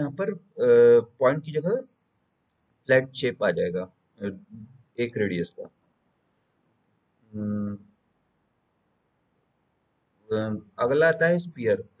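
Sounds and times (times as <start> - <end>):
man humming filler sound: 0.0 - 1.7, 7.4 - 7.8, 10.3 - 11.8.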